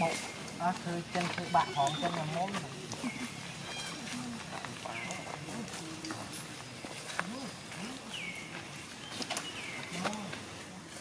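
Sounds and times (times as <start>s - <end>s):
people talking: 0.0s - 6.5s, 7.2s - 8.2s, 9.9s - 11.0s.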